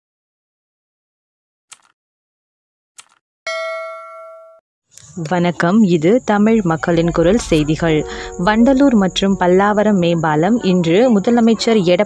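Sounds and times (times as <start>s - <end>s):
bell ding: 3.5s - 4.6s.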